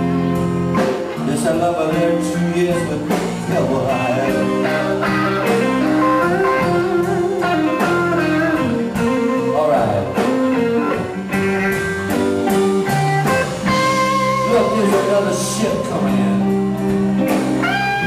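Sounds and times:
drum kit: 0.0 - 18.0
electric guitar playing: 0.0 - 18.0.

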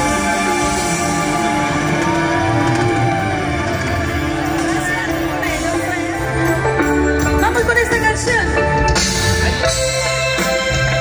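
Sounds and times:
live band music over pa: 0.0 - 11.0.

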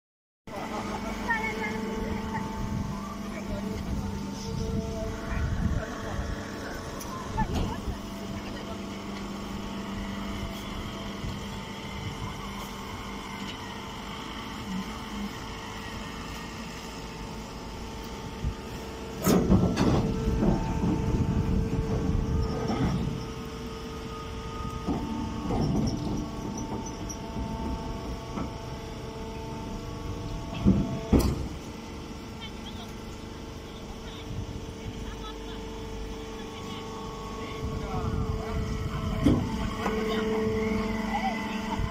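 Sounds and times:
hydraulic motor and pump humming: 0.5 - 41.9.

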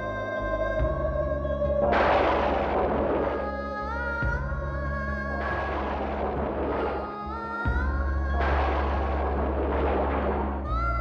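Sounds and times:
low drone: 0.0 - 11.0
crashing noise swells: 1.8 - 4.0, 5.4 - 7.2, 8.4 - 10.8.

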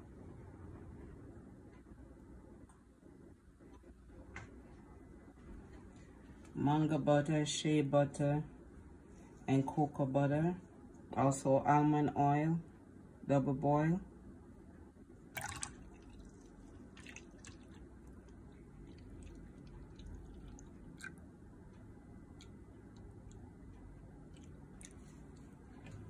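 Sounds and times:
liquid pouring into a bowl: 15.4 - 21.2, 22.3 - 26.0
small drips: 15.4 - 21.2, 21.8 - 26.0.

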